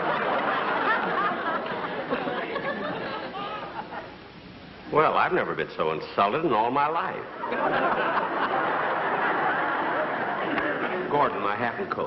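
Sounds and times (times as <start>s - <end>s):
audience laughing: 0.0s - 4.2s, 7.3s - 11.8s.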